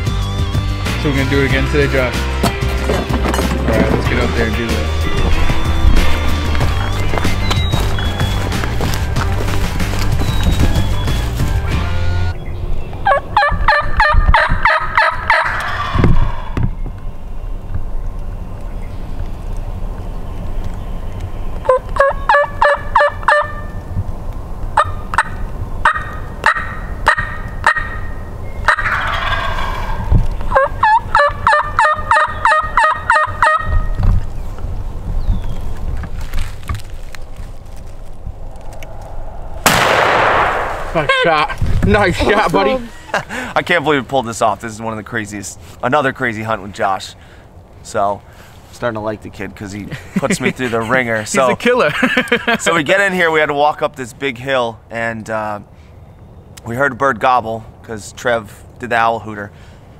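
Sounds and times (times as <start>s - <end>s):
turkeys yelping and gobbling: 13.0s - 17.2s, 20.6s - 23.8s, 24.7s - 34.0s, 40.9s - 41.6s
shotgun blast echoing: 39.1s - 41.1s.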